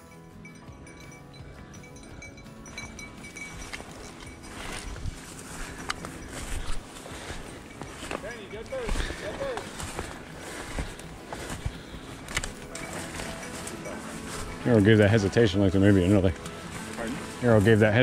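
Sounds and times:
footsteps through brush: 0:02.6 - 0:18.0
twigs snapping: 0:08.9 - 0:14.5, 0:16.3 - 0:17.3.

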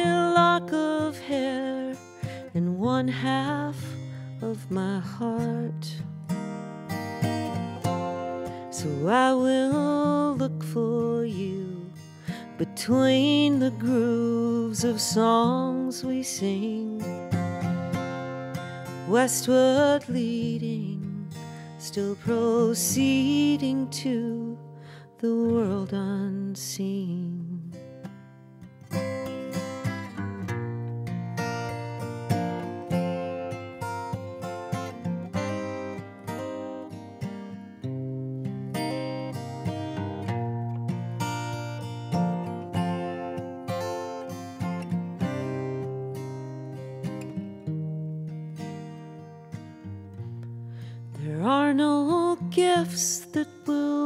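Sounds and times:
woman singing: 0:00.0 - 0:06.1, 0:07.6 - 0:17.6, 0:18.8 - 0:28.0, 0:51.1 - 0:54.0
acoustic guitar playing: 0:00.0 - 0:54.0.

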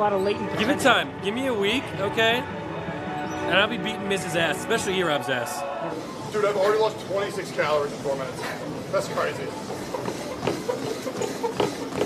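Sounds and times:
footfalls on treadmill belt: 0:09.7 - 0:12.0.

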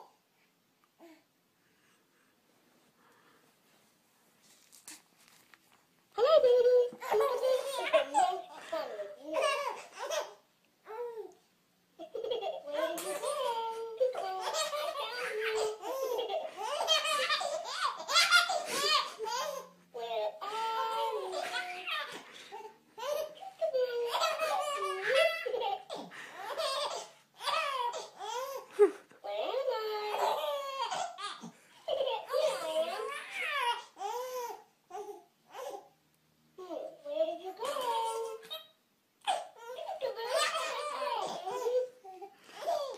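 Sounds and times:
baby laughing: 0:06.2 - 0:10.4, 0:12.0 - 0:34.6, 0:37.6 - 0:42.9.

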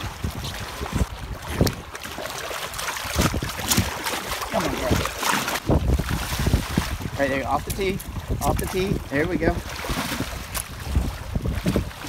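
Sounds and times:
water splashing: 0:00.0 - 0:12.0
wind buffeting microphone: 0:00.0 - 0:12.0.

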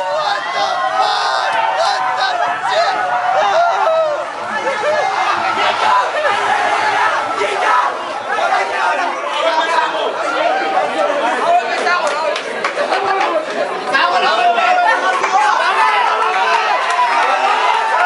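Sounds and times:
crowd chatter: 0:00.0 - 0:18.0.

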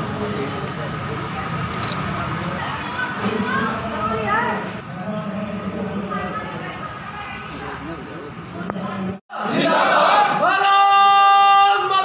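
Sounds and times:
general crowd noise: 0:00.0 - 0:12.0
children's voices calling out: 0:02.6 - 0:04.1.

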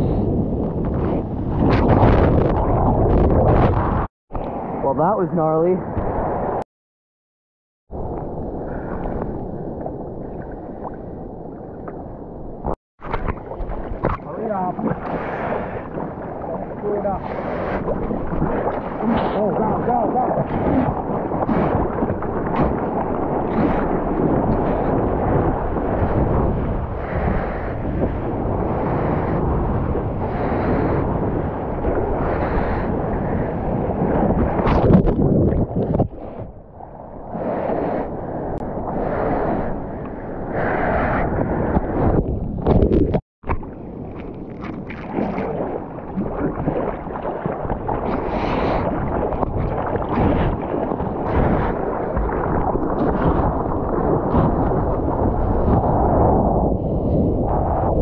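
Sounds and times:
wind buffeting microphone: 0:00.0 - 0:06.6, 0:07.9 - 0:58.0
sea water rushing and splashing: 0:07.9 - 0:58.0.

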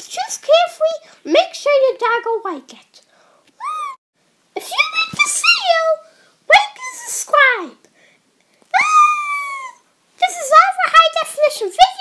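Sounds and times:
high-pitched pet cry: 0:03.6 - 0:04.0.

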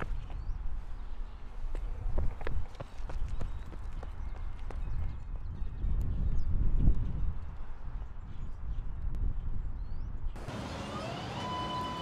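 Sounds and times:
footsteps on pavement: 0:00.0 - 0:05.2
wind rumble on microphone: 0:00.0 - 0:10.4.

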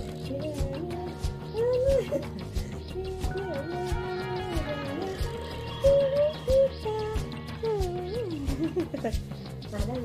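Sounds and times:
background music with beat: 0:00.0 - 0:10.0.

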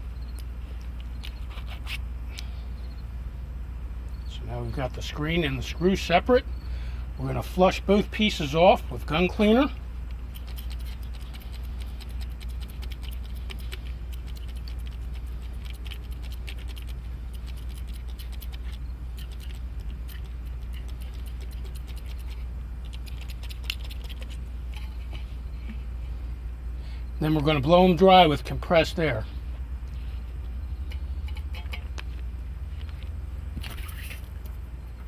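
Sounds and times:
low hum: 0:00.0 - 0:35.0.

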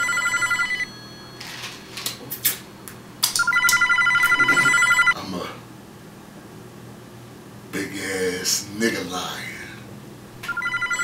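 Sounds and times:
telephone ringing electronic trill: 0:00.0 - 0:02.0, 0:03.3 - 0:05.2, 0:10.4 - 0:11.0.

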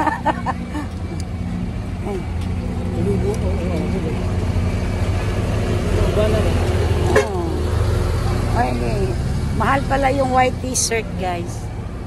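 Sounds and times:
vehicle engine idling: 0:00.0 - 0:12.0
people talking: 0:02.0 - 0:04.4, 0:06.1 - 0:07.6, 0:08.5 - 0:11.6.

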